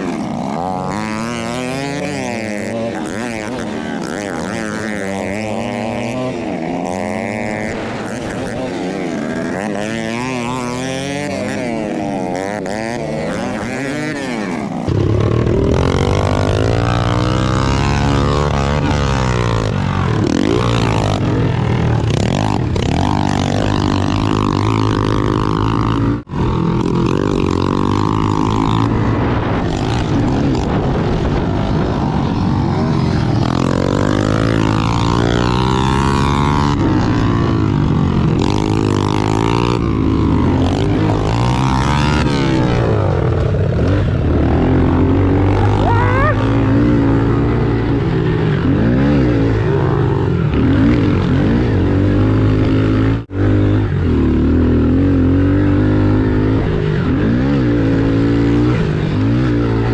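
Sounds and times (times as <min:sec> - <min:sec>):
motorbike engine revving: 0:00.0 - 0:59.9
other pit bikes running: 0:00.0 - 0:59.9.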